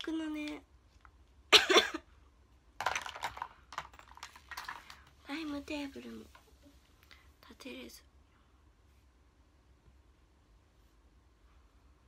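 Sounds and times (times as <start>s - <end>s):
person coughing: 1.5s - 2.1s.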